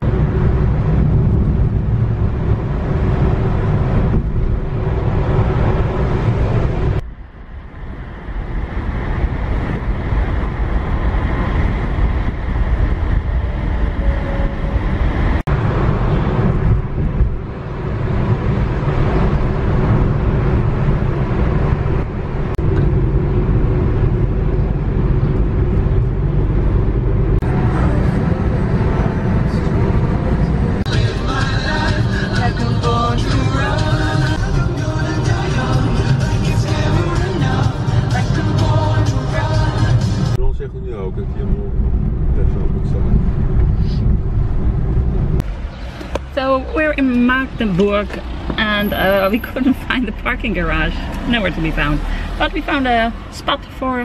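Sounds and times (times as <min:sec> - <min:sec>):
car cabin road noise: 0:00.0 - 0:54.0.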